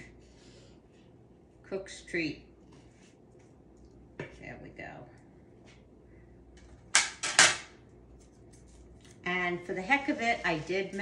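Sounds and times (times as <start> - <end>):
parchment paper rustling scrapes: 2.7 - 3.5, 8.1 - 11.0.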